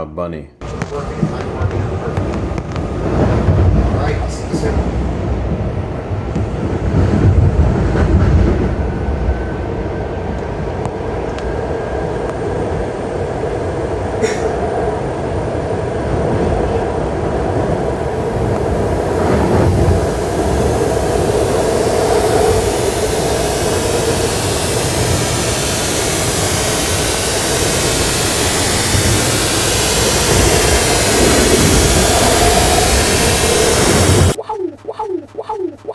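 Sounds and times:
train wheels rumbling: 0:00.6 - 0:34.4
harsh hiss: 0:17.8 - 0:34.4.

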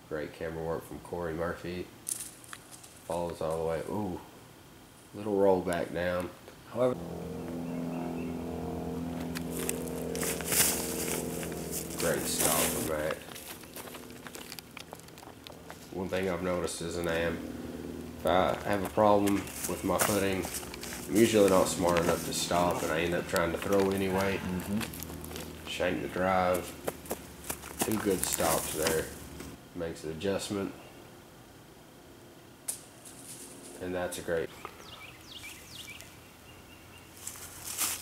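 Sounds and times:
woodland ambience: 0:02.0 - 0:38.0
footsteps crunching on dry leaves: 0:08.4 - 0:29.6, 0:37.1 - 0:38.0.

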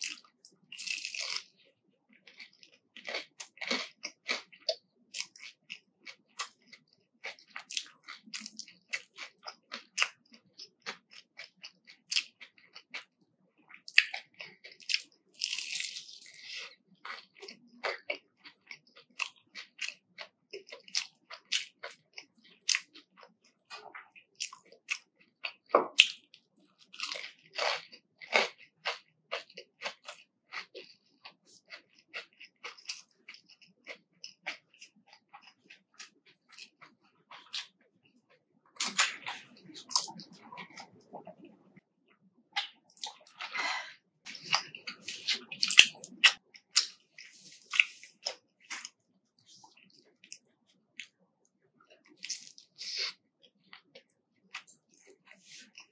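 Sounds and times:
crunchy chewing of fried food: 0:00.0 - 0:55.9.

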